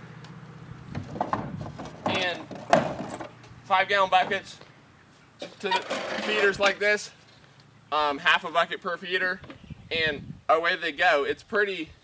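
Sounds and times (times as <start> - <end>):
wooden boards knocking and scraping: 0.9 - 3.4.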